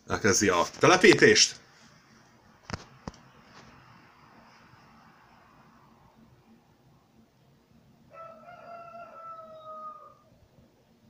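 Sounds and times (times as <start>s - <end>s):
rooster crowing: 8.1s - 10.4s.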